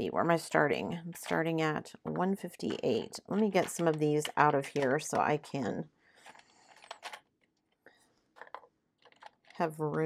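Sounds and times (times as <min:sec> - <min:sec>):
plastic containers clicking and rattling: 0:02.6 - 0:05.5, 0:06.2 - 0:07.3, 0:08.4 - 0:09.6.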